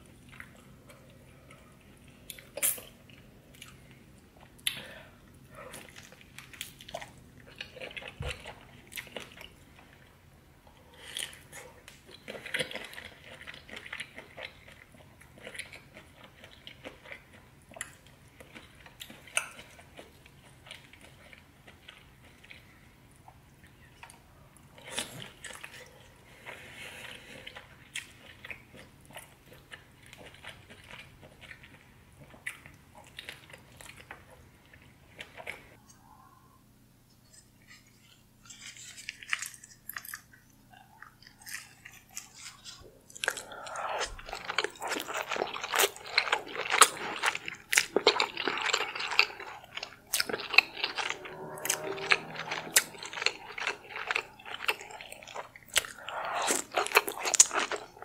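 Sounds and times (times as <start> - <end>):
chewing seafood: 0.0 - 36.4, 37.1 - 58.0
wet sticky mouth sounds: 40.8 - 58.0.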